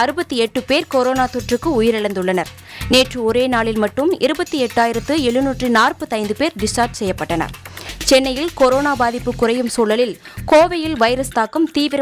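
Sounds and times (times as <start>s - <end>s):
background music: 0.0s - 12.0s
newsreader speaking: 0.0s - 12.0s.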